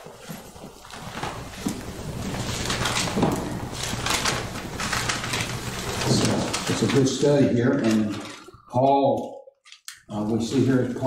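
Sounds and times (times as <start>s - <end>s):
clothing rustling on microphone: 0.0s - 8.7s.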